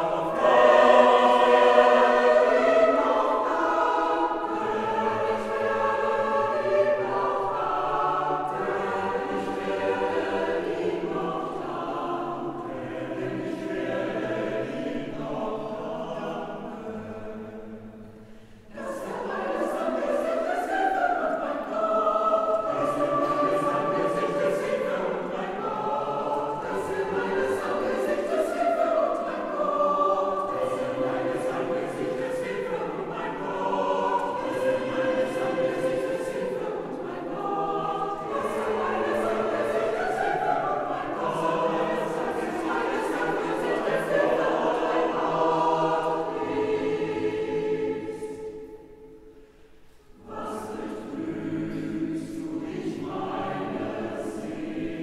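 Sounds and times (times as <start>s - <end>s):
mixed choir singing a cappella: 0.0s - 55.0s.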